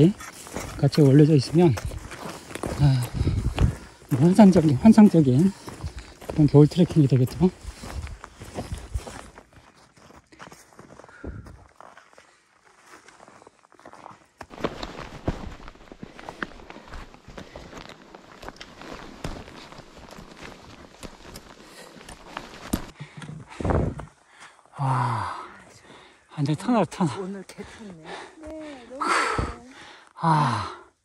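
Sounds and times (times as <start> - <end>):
boot footsteps in snow: 0.0 - 22.9.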